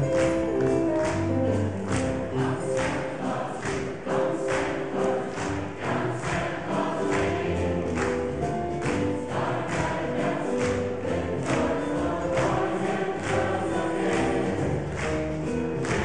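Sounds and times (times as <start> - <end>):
bright rhythmic strokes: 0.0 - 16.0
mixed choir singing in harmony: 0.0 - 16.0.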